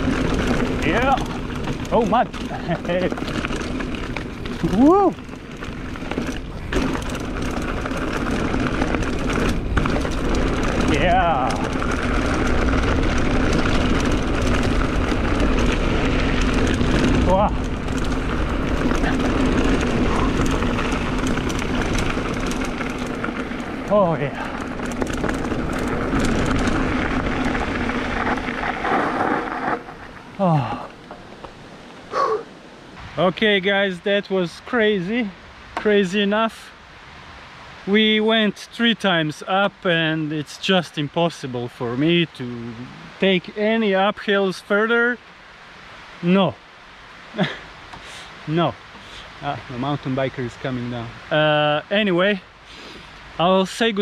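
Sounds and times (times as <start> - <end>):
wind buffeting microphone: 0.0 - 33.2
bike tyres rolling and rattling: 0.0 - 36.6, 37.8 - 54.0
person saying wow: 4.6 - 5.2
person laughing: 47.4 - 47.7.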